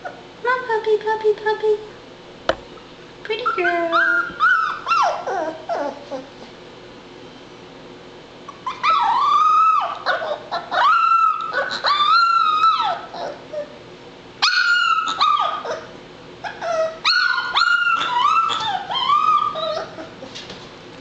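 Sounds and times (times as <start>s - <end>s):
puppy whining and crying: 3.4s - 6.6s, 8.5s - 13.8s, 14.4s - 20.5s.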